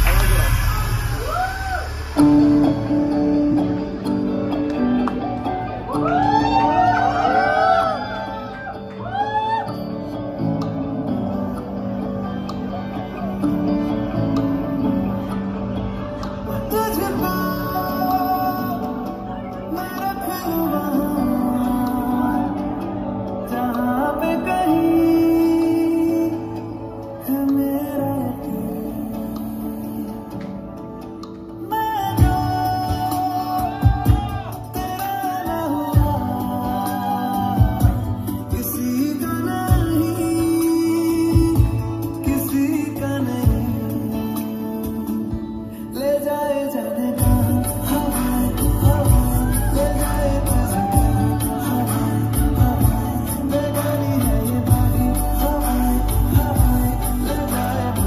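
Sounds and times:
guitar: 0.0s - 58.0s
person singing: 0.0s - 58.0s
song over sound system: 0.0s - 58.0s.

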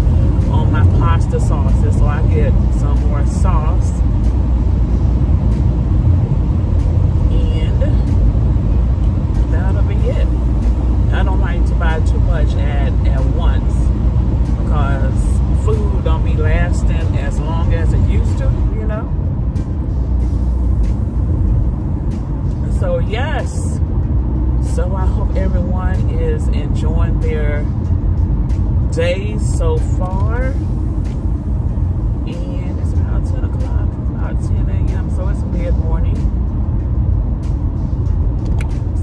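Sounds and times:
road and engine rumble in car: 0.0s - 39.0s.

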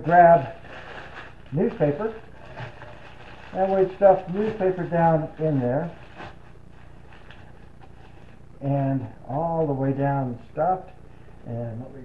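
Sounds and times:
newspaper crinkling and rustling: 0.0s - 8.5s
low room hum: 0.0s - 12.0s.

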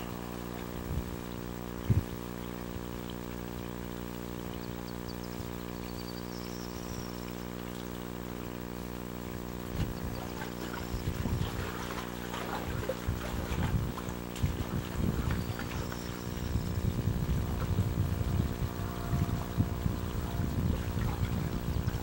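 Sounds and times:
wind gusting on microphone: 0.0s - 2.8s, 9.7s - 22.0s
low hum: 0.0s - 22.0s
water splashing in trough: 9.6s - 22.0s.

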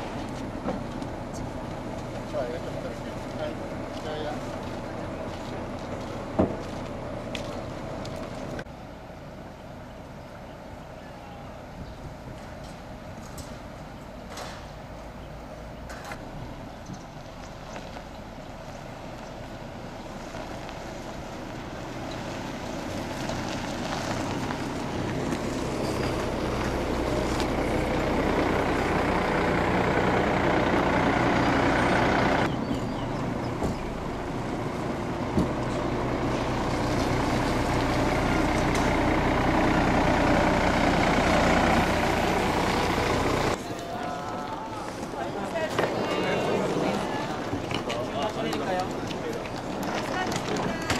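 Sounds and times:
bus engine running: 0.0s - 50.9s.

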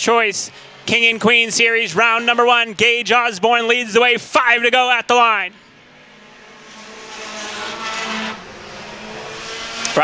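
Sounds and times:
race car engines at speed: 0.0s - 10.0s.

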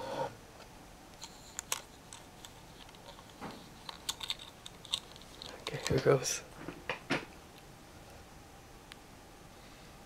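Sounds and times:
hands handling plastic clicks: 1.1s - 6.2s.

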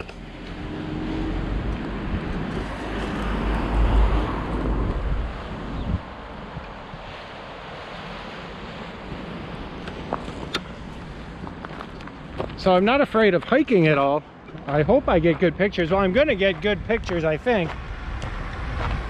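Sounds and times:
steady outdoor hiss: 0.0s - 19.0s
wind buffeting microphone: 0.5s - 7.4s, 14.5s - 19.0s.

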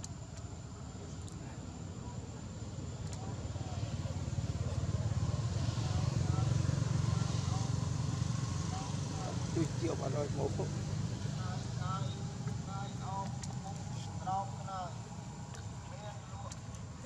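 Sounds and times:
vehicle engine running: 2.4s - 17.0s.

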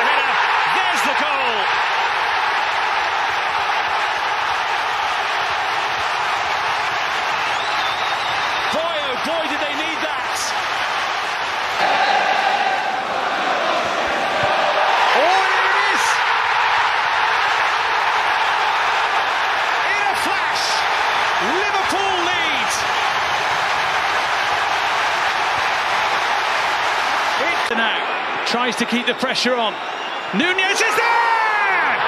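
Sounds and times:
stadium crowd roaring: 0.0s - 32.0s
whistles: 7.4s - 8.8s, 29.7s - 30.4s.

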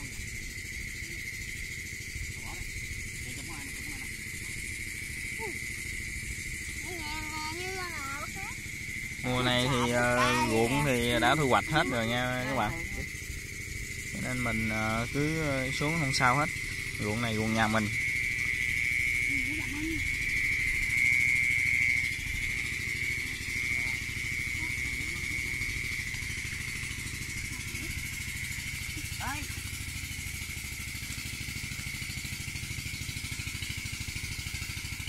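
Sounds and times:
frogs chorus pulsing: 0.0s - 35.0s
high-pitched insect trill: 0.0s - 35.0s.

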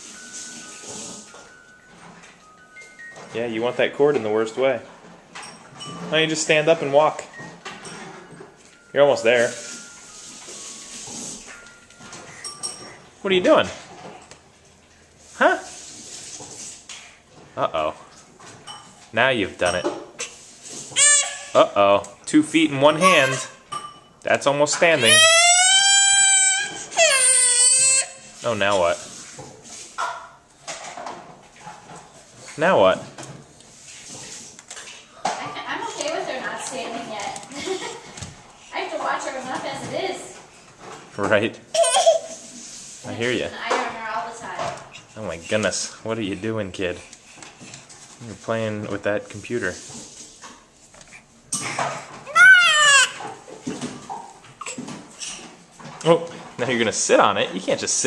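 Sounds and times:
baby crying: 21.0s - 21.6s, 22.9s - 23.6s, 25.0s - 28.3s, 41.7s - 42.4s, 52.2s - 53.3s, 54.6s - 54.9s
baby vocalizing softly: 54.6s - 55.4s.

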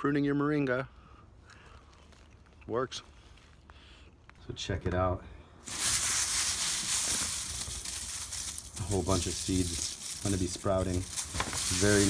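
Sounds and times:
seeds rustling in paper bag: 5.6s - 12.0s.

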